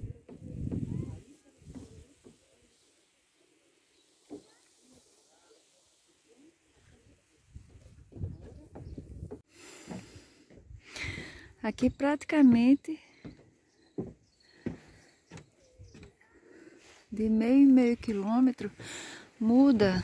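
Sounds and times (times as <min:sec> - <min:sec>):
wind buffeting microphone: 0:00.0 - 0:02.0, 0:07.5 - 0:09.4.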